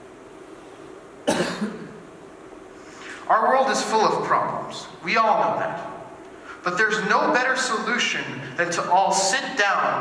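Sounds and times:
man coughing: 1.2s - 2.0s.

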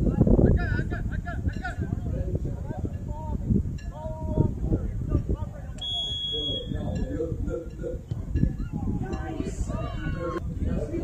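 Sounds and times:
spectators' voices: 0.0s - 11.0s
referee whistle blast: 5.8s - 6.8s.

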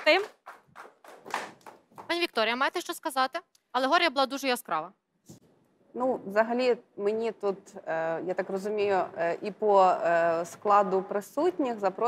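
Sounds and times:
audience hand claps: 0.0s - 2.2s.

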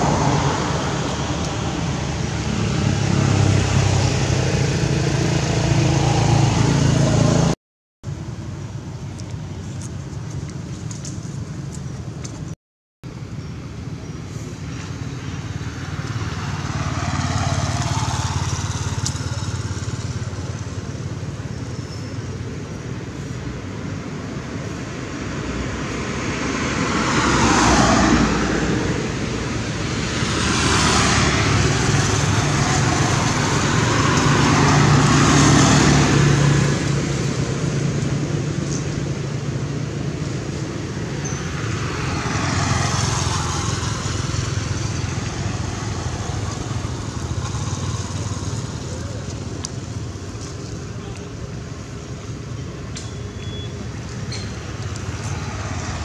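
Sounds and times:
vehicles passing by: 0.0s - 56.0s.

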